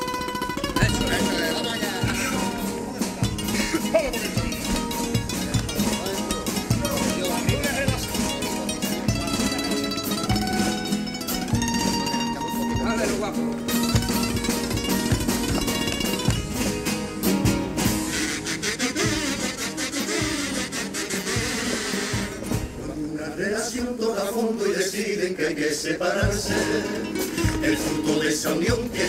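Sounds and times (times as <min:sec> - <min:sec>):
sharp percussive strikes: 0:00.0 - 0:22.9
acoustic guitars playing: 0:00.0 - 0:29.0
rushing hissing noise: 0:17.8 - 0:22.7.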